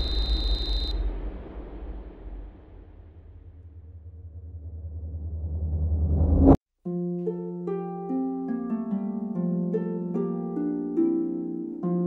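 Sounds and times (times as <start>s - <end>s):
high ringing tone: 0.0s - 1.1s
deep rumble: 0.0s - 6.6s.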